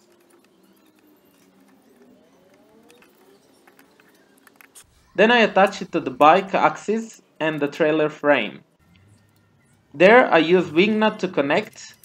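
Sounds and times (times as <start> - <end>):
small metal parts clicking: 11.5 - 12.0.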